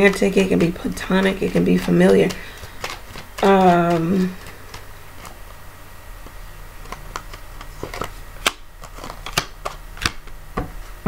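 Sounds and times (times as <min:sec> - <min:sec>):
playing cards clicking and snapping: 0:00.0 - 0:05.4, 0:06.2 - 0:10.7
low steady hum: 0:00.0 - 0:11.0.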